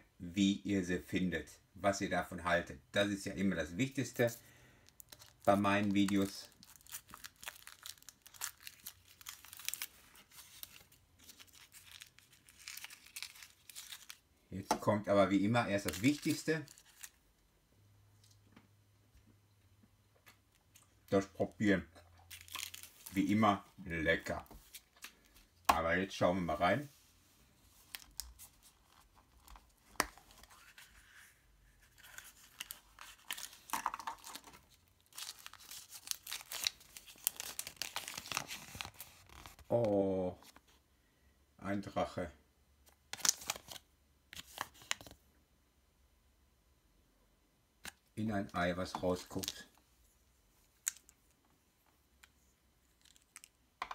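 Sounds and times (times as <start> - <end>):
foil wrapper crinkling: 4.8 - 14.2, 22.3 - 23.4, 31.9 - 39.7.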